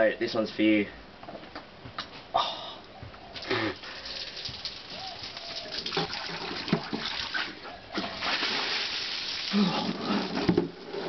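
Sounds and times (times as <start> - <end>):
beer splashing onto ground: 3.4 - 7.4, 8.0 - 10.8
water splash: 4.1 - 10.5.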